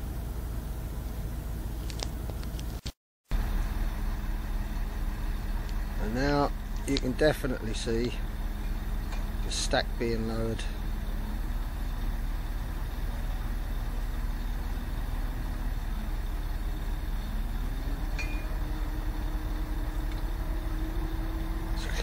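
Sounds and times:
diesel engine humming: 0.0 - 22.0.

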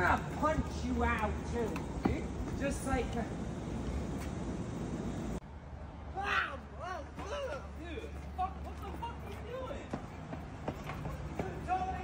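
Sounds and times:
low city hum: 0.0 - 12.0.

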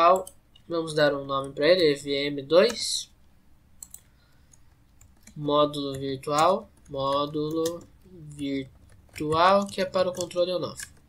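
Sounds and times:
low room noise: 0.0 - 11.0
computer keyboard clicks: 3.8 - 8.1.

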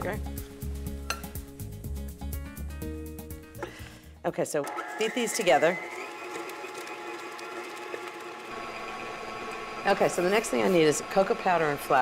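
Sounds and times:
electric stand mixer whipping: 4.6 - 12.0.

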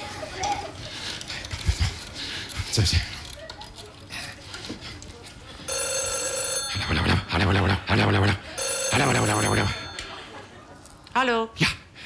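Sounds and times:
landline telephone ringing: 5.7 - 10.7.

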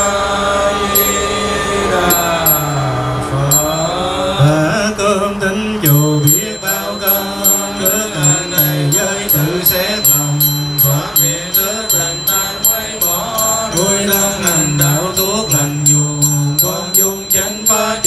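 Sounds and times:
monks chanting together: 0.0 - 18.0.

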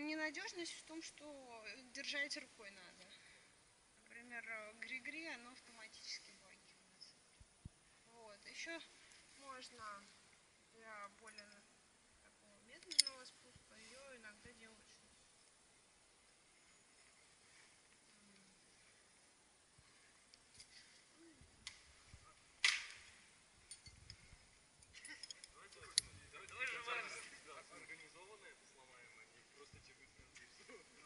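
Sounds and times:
carabiner gates clicking: 12.8 - 13.2
metal climbing hardware handling: 12.8 - 13.4, 23.6 - 24.2, 24.8 - 26.1.

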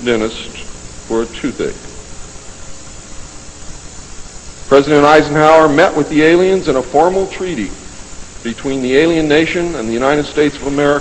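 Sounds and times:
faint steady hum: 0.0 - 11.0
steady hiss: 0.0 - 11.0.

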